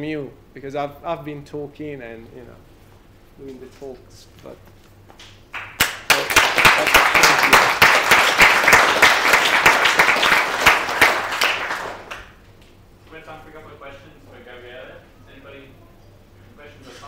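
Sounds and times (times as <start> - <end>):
audience applauding: 5.5 - 12.4.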